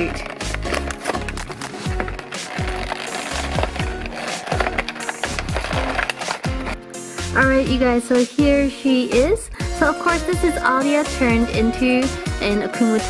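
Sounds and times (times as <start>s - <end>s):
cardboard and plastic packaging tearing: 0.0s - 7.0s
background music with low beat: 0.0s - 13.0s.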